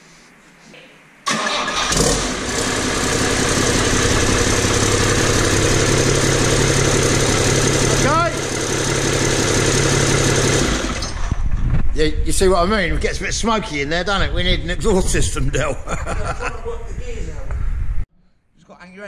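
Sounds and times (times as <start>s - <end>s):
diesel engine starting and running: 1.3s - 11.5s.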